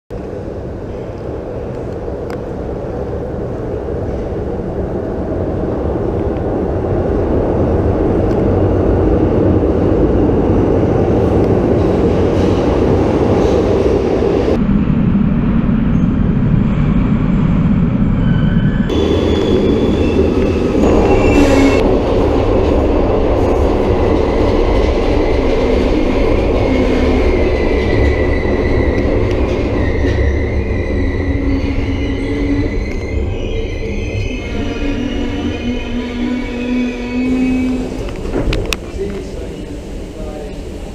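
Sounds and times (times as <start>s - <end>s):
subway train rumbling: 0.1s - 40.9s.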